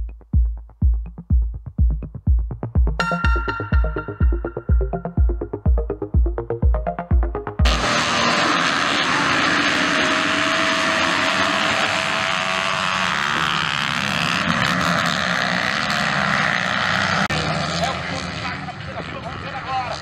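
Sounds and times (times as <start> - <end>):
electronic music beat: 0.0 - 8.0
motocross bikes racing: 7.6 - 20.0.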